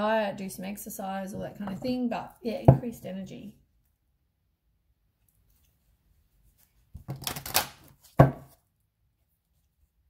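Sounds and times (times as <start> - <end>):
cards being shuffled: 6.5 - 8.2.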